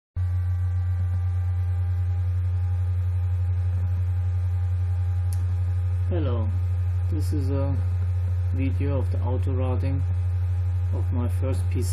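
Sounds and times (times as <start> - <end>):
laptop cooling fan hum: 0.2 - 11.9.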